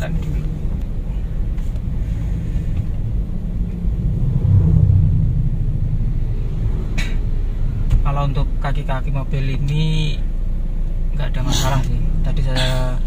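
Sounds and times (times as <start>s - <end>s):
car cabin road and engine rumble: 0.0s - 13.0s.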